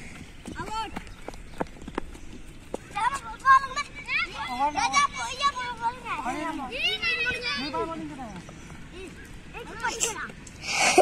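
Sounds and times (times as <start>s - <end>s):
children shouting: 3.0s - 8.0s.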